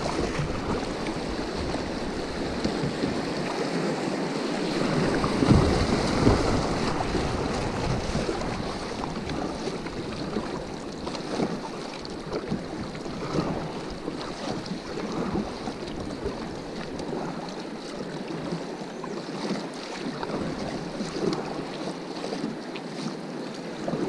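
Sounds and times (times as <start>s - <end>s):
wind buffeting microphone: 0.0s - 3.6s, 4.5s - 11.7s
river water rushing around kayak: 0.0s - 24.0s
small splashes: 4.6s - 18.6s.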